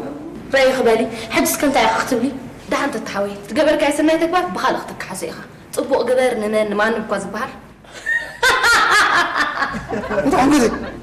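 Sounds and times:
woman laughing mockingly: 7.9s - 11.0s.

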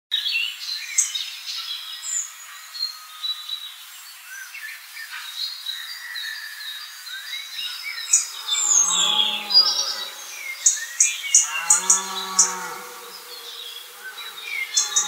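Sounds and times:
songbirds chirping and trilling: 0.2s - 15.0s.

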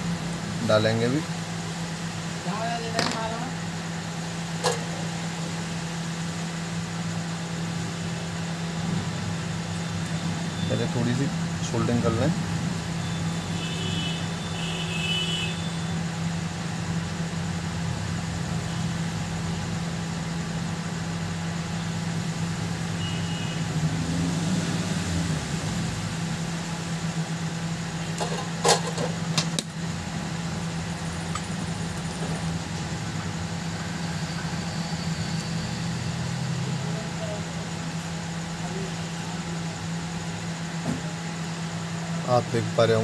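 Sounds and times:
low mechanical hum: 0.0s - 43.0s.

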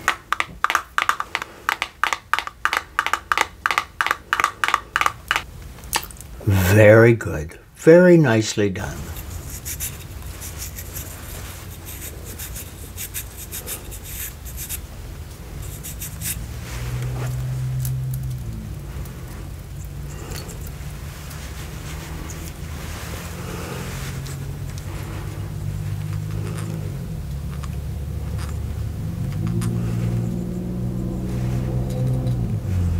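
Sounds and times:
brush bristles scratching: 8.9s - 18.5s, 20.0s - 27.0s.

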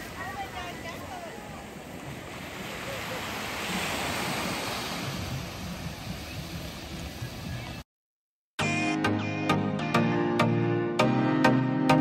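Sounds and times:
ocean surf on beach: 0.0s - 7.8s.

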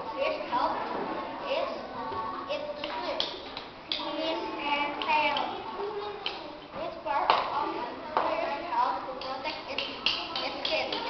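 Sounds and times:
young children speaking: 0.0s - 11.0s.

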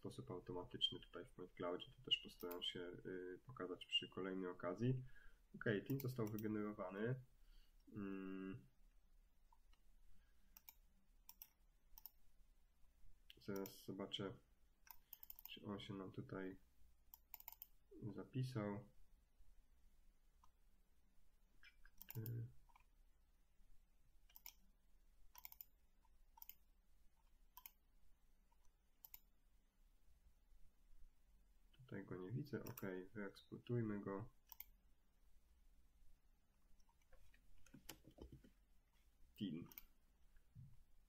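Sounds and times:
computer mouse clicks: 2.3s - 2.7s, 5.8s - 6.6s, 10.5s - 12.2s, 13.3s - 13.8s, 14.8s - 15.6s, 17.1s - 17.8s, 21.6s - 22.9s, 24.3s - 24.7s, 25.3s - 26.7s, 27.5s - 27.8s, 28.5s - 29.3s, 32.6s - 32.9s, 34.4s - 34.8s, 39.6s - 40.0s.

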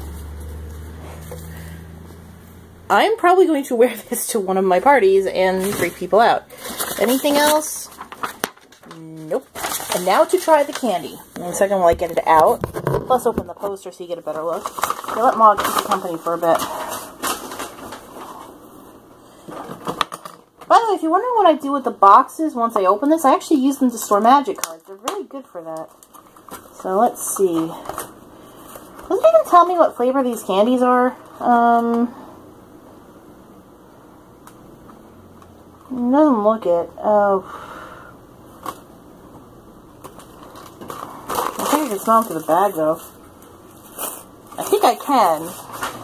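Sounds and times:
packaging crinkling and rustling: 5.5s - 18.7s, 19.4s - 20.7s, 23.8s - 29.7s, 38.5s - 38.9s, 40.0s - 46.0s.

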